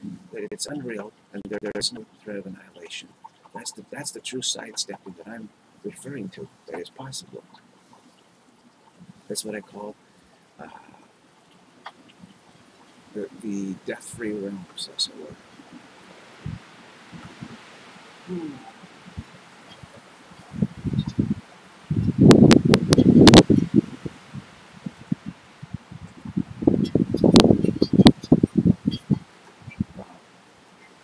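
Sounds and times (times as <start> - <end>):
faint background hiss: 0.0 - 31.0
rustling on microphone: 15.3 - 31.0.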